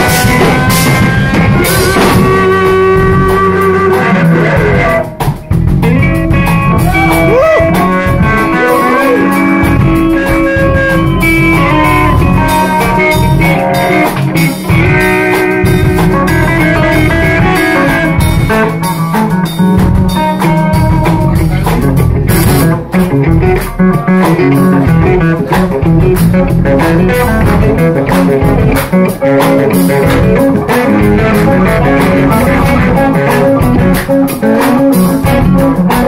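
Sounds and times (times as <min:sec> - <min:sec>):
blues-rock band playing: 0:00.0 - 0:36.0
drum kit: 0:00.0 - 0:36.0
lead electric guitar bending notes: 0:00.0 - 0:36.0.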